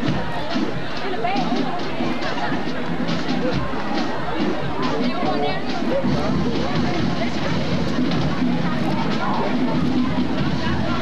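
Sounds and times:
crowd voices talking and calling: 0:00.0 - 0:11.0.

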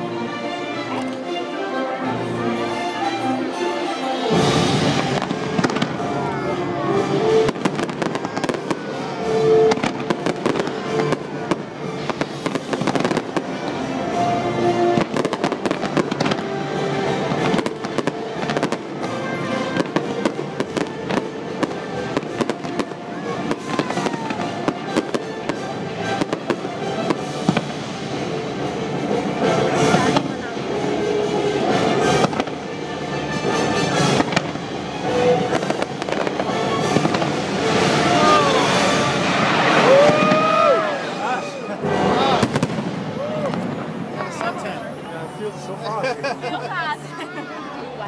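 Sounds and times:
orchestral music: 0:00.0 - 0:48.0
fireworks bursting and crackling: 0:04.3 - 0:47.2.

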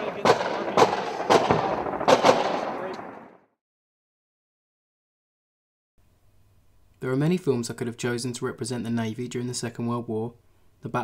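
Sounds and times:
gunshots with rolling echo: 0:00.0 - 0:03.5.

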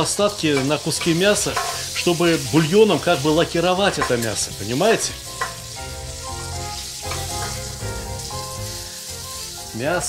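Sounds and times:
meat sizzling in a pan: 0:00.0 - 0:10.0
soft background music: 0:00.0 - 0:10.0
metal spatula scraping: 0:00.5 - 0:05.8, 0:06.8 - 0:07.8.

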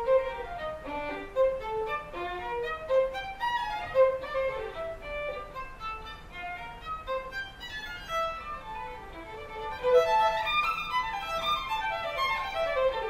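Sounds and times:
solo violin playing: 0:00.0 - 0:13.0.

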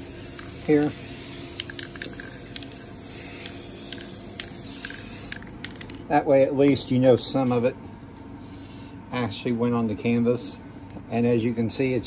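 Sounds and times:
spray-paint can hissing: 0:00.0 - 0:06.0.

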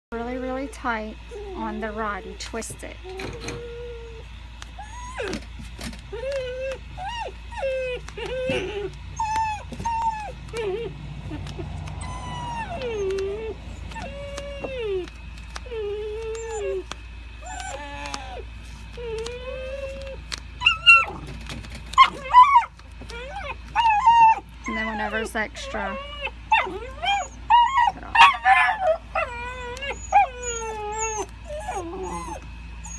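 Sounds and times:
dog whining and whimpering: 0:00.3 - 0:32.9.

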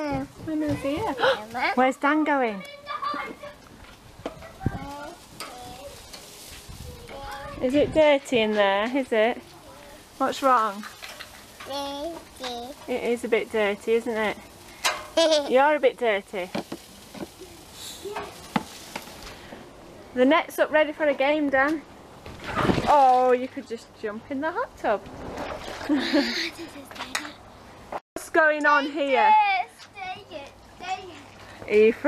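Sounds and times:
meat sizzling on grill: 0:00.0 - 0:19.7
metal tongs clicking on grill: 0:05.4 - 0:06.3, 0:14.8 - 0:15.2.

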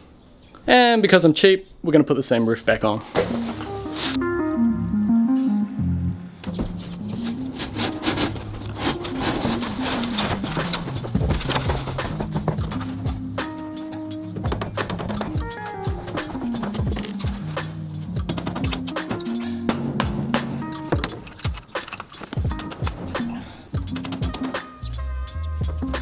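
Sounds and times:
instrumental background music: 0:03.2 - 0:26.0.

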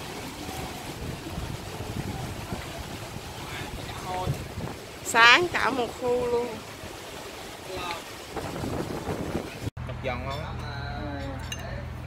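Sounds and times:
sea waves on shore: 0:00.0 - 0:09.7
wind buffeting microphone: 0:00.0 - 0:09.7.

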